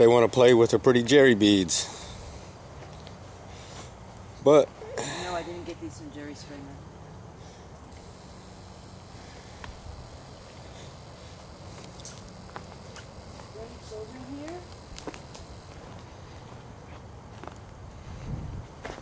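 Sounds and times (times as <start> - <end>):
faint clicks: 7.9 - 13.5
high-pitched whine: 7.9 - 15.8.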